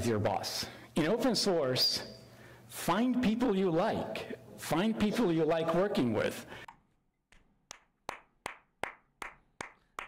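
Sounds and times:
person clapping hands: 7.3s - 10.0s.

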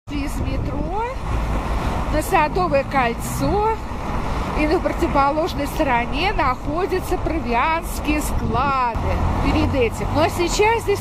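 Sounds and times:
car traffic rumble: 0.1s - 11.0s.

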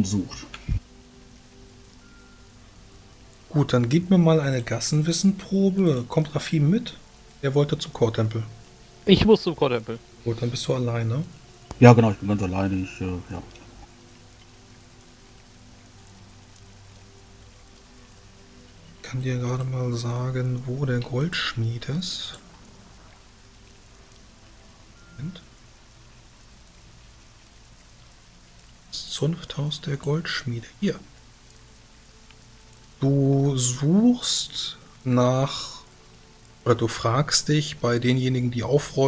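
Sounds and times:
faint hiss: 0.0s - 39.0s
soft ambient music: 0.0s - 39.0s.

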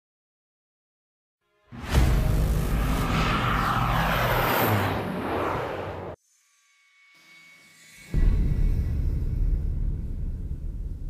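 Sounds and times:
propeller airplane passing overhead: 2.1s - 6.2s.

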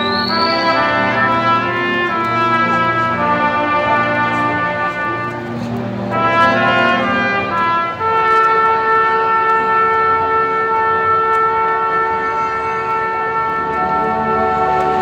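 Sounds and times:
brass band playing: 0.0s - 15.0s.

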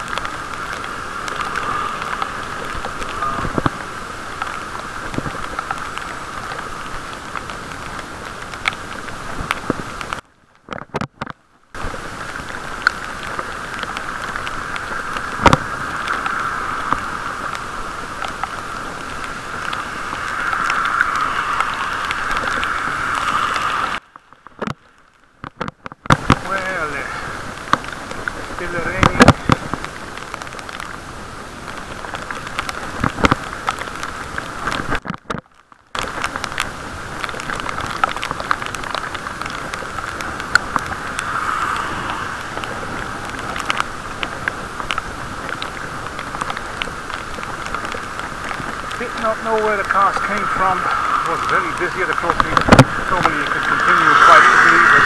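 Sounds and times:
wind noise: 0.0s - 24.8s, 25.4s - 35.4s, 36.0s - 55.0s
wet bicycle tyre noise: 0.0s - 55.0s.

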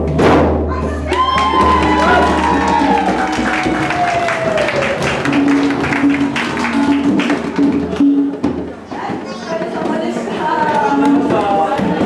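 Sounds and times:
hand drums playing: 0.0s - 12.0s
group cheering: 0.8s - 8.0s
long falling whoop: 1.1s - 5.2s
dense clapping: 1.1s - 12.0s.

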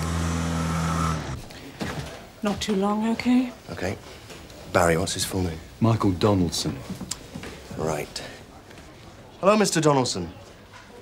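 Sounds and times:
car engine revving: 0.0s - 1.4s.

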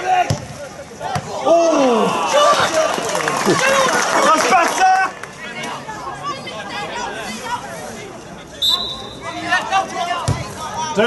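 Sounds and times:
crowd chattering and calling out: 0.0s - 11.0s
whistle blast: 8.6s - 9.3s.

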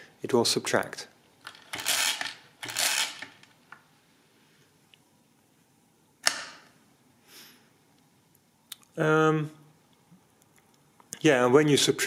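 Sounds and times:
mechanical calculator gear noise: 1.5s - 3.4s.

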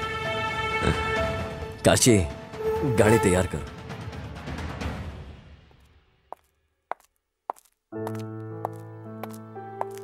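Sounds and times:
footsteps on tiled floor: 6.3s - 10.0s.

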